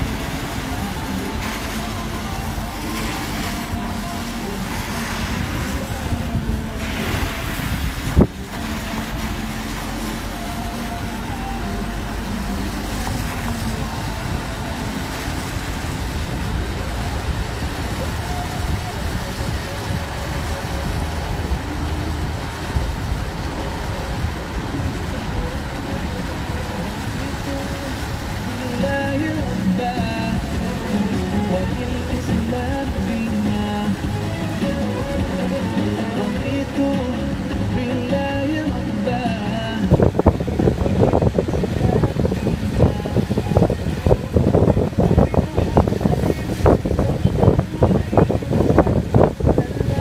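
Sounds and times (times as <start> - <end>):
car engine and road noise: 0.0 - 50.0.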